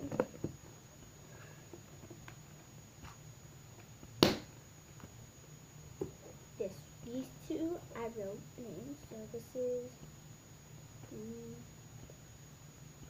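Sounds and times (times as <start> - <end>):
low steady hum: 0.0 - 13.0
sharp knock: 4.2 - 4.5.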